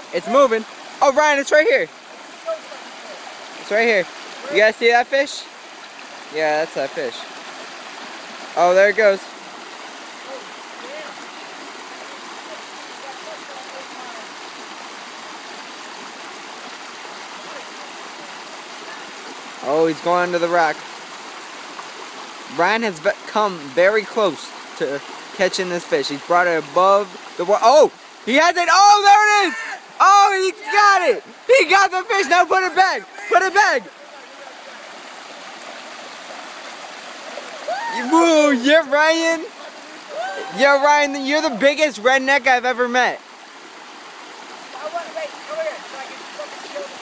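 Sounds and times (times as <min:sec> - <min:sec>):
stream rushing over rocks: 0:00.0 - 0:47.0.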